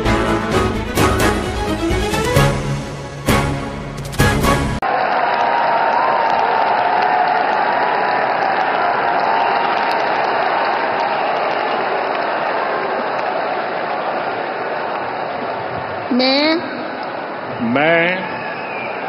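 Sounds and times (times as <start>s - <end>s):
large crowd applauding: 4.8s - 16.1s, 16.8s - 19.0s.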